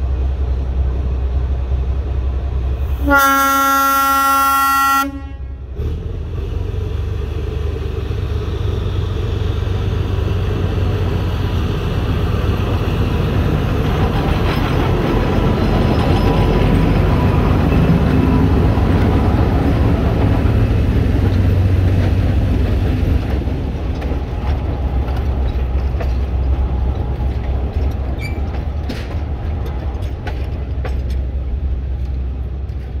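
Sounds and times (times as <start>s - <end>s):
diesel locomotive engine under load: 0.0s - 33.0s
train wheels clicking over rails: 5.7s - 33.0s.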